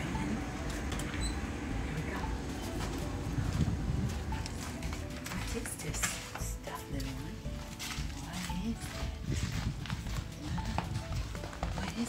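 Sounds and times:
background music: 0:00.0 - 0:12.0
footsteps on pavement: 0:02.2 - 0:12.0.

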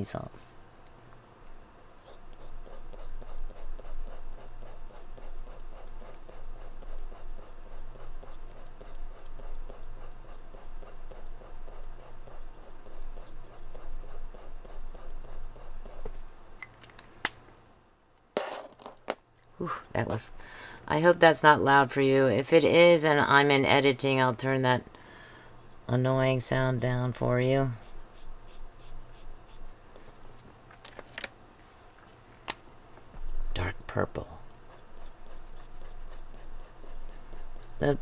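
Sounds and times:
brush marker scrubbing on paper: 0:02.0 - 0:16.3, 0:27.6 - 0:30.2, 0:34.7 - 0:38.0.

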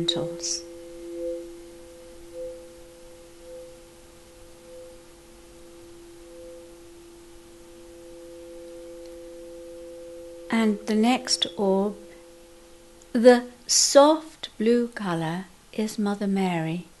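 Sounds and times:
high pulsing pure tone: 0:00.0 - 0:15.3
low pure tone: 0:00.0 - 0:17.0.

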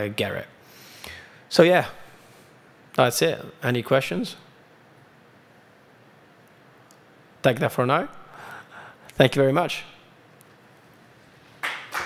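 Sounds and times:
audience applause: 0:11.6 - 0:12.0.

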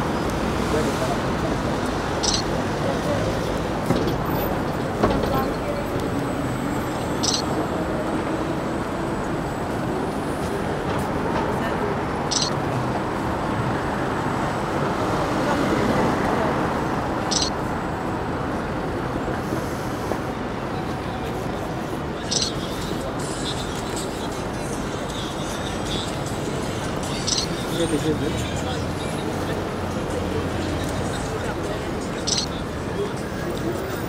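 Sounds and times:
indistinct voices: 0:00.0 - 0:34.0
traffic: 0:00.0 - 0:34.0.

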